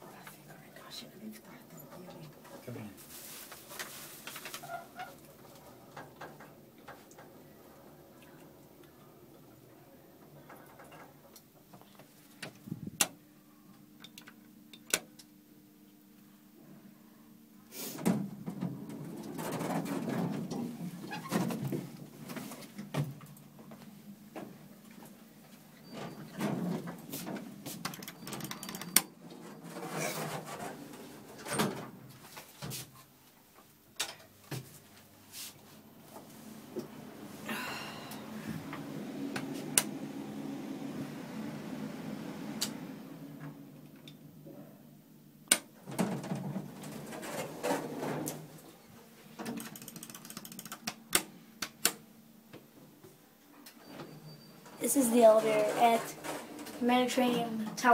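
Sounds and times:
elevator low hum: 5.4 - 11.9, 35.6 - 49.1.

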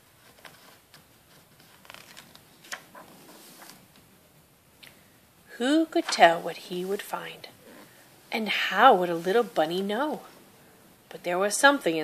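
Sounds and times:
paper page rustling: 0.0 - 3.9
page turn: 0.2 - 4.0.

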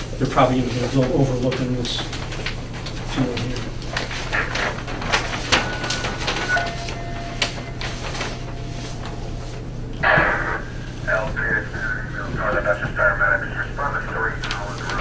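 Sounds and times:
paper maps rustling: 0.0 - 15.0
steady low hum: 0.0 - 15.0.

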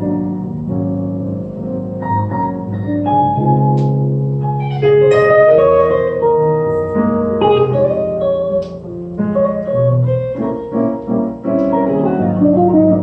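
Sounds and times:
jazz guitar: 0.0 - 13.0
piano chords and melody: 0.0 - 13.0.

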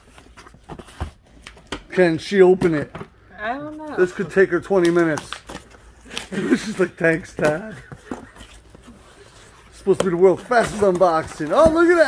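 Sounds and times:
cardboard scraping and knocking: 9.8 - 12.0.

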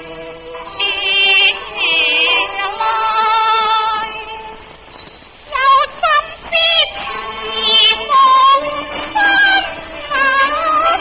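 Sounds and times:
woman singing opera-style: 0.0 - 4.6, 5.5 - 11.0.

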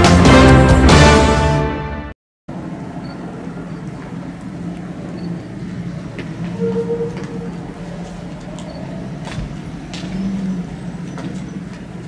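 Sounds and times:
heavy vehicle engine droning: 2.5 - 12.0.

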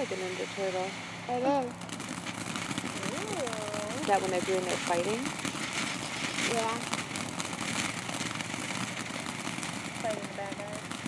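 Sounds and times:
firework fountain hissing and crackling: 0.0 - 11.0.

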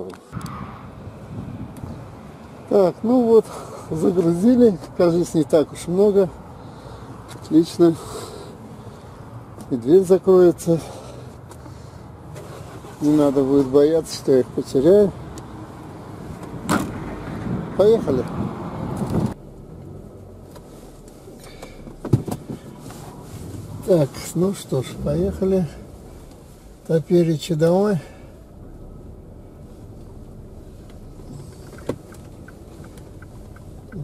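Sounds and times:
car engine and road rumble: 0.0 - 34.0.

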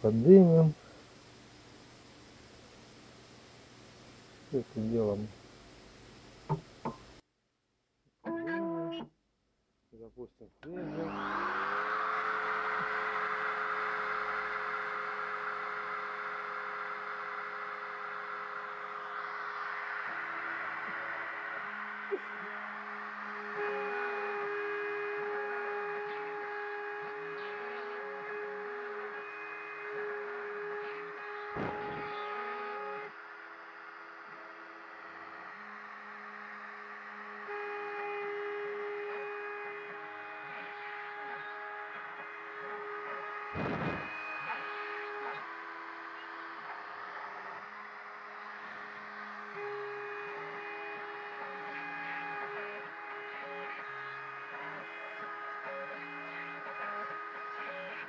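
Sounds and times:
router spindle high whine: 0.0 - 7.2, 10.6 - 58.0
stepper motors whining: 10.6 - 58.0.

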